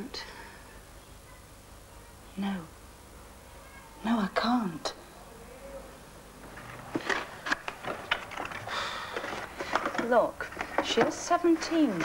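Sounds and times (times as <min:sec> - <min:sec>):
woman speaking: 0:02.3 - 0:02.7, 0:04.0 - 0:05.0, 0:09.9 - 0:12.0.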